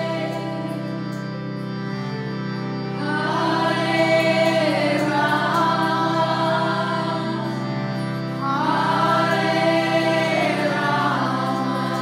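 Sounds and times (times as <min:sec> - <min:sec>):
harmonium: 0:00.0 - 0:12.0
low drone: 0:00.0 - 0:12.0
group chanting: 0:08.4 - 0:12.0.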